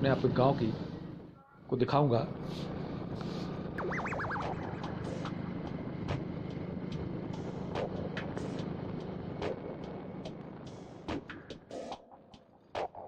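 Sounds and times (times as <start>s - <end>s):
motorcycle engine humming: 0.0s - 11.8s
wind and road noise: 0.0s - 13.0s.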